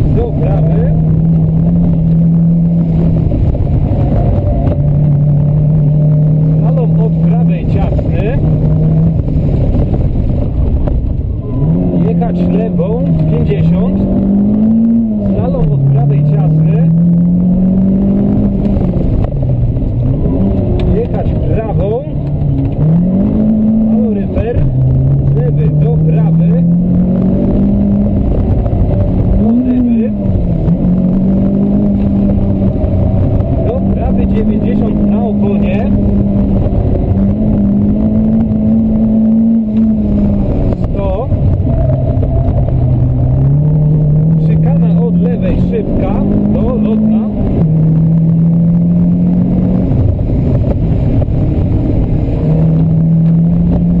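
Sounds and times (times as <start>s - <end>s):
rally car engine revving: 0.0s - 54.0s.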